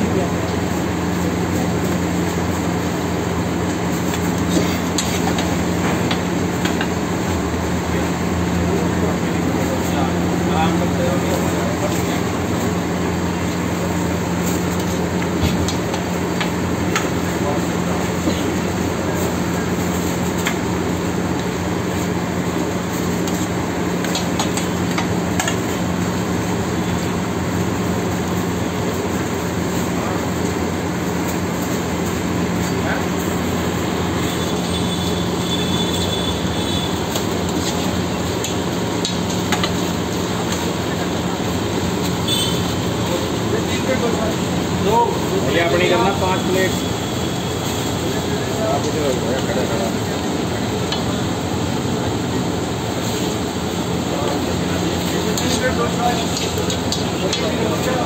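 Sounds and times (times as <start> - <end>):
frying roar on griddle: 0.0 - 58.0.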